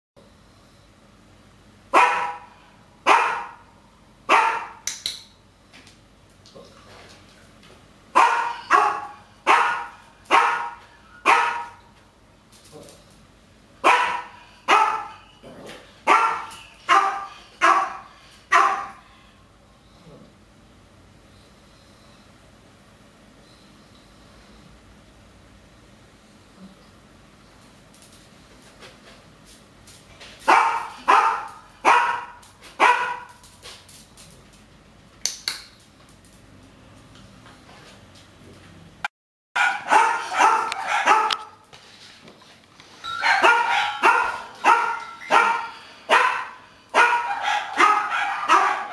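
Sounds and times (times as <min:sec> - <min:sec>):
dog barking: 0:01.9 - 0:03.6, 0:04.3 - 0:04.8, 0:08.2 - 0:11.8, 0:13.8 - 0:15.3, 0:16.1 - 0:19.0, 0:30.5 - 0:33.4, 0:39.6 - 0:41.6, 0:43.1 - 0:48.9.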